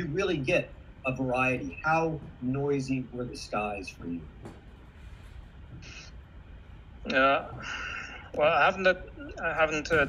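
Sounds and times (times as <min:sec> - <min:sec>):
video call low hum: 0:00.0 - 0:10.0.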